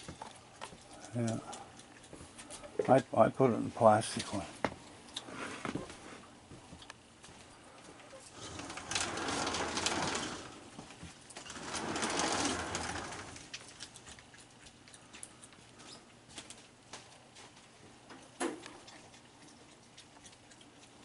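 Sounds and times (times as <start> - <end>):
claws clicking and scraping: 8.2 - 17.7.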